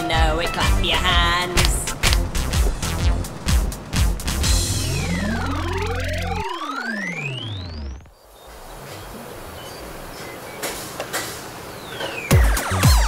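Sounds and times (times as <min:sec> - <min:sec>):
electronic tones sweeping in pitch: 0:04.2 - 0:08.2
children's song chord: 0:04.4 - 0:07.3.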